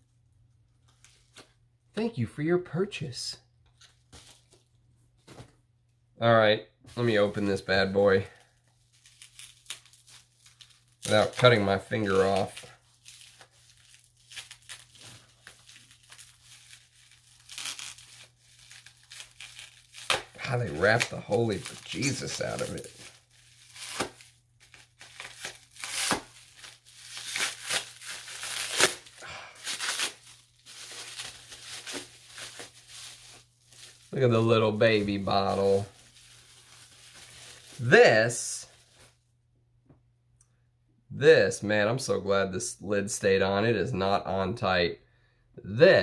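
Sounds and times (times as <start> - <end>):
packing wrap tearing and crinkling: 7.0 - 39.2.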